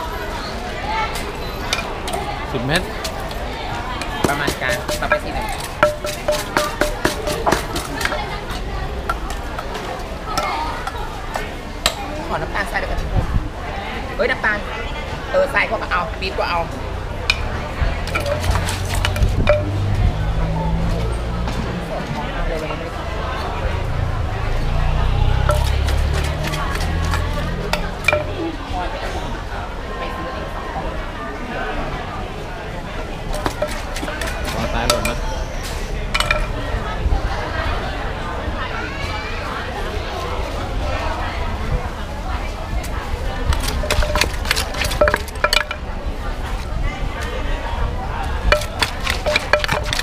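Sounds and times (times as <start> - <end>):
market chatter: 0.0 - 50.0
metal utensil clinking bowl: 4.0 - 8.4, 17.3 - 19.9, 25.3 - 28.4, 33.0 - 35.4, 36.1 - 36.6, 43.5 - 45.9, 48.5 - 50.0
pestle pounding in mortar: 4.0 - 9.7, 17.3 - 19.9, 25.4 - 28.4, 33.0 - 35.4, 43.5 - 45.9, 48.5 - 50.0.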